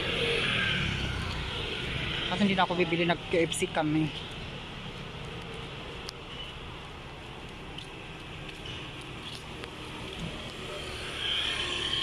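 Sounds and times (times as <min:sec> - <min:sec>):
motor scooter passing: 0:00.0 - 0:03.4, 0:09.3 - 0:12.0.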